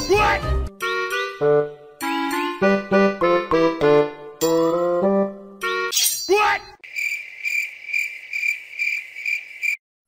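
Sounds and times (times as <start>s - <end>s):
cricket chirping: 6.8s - 9.8s.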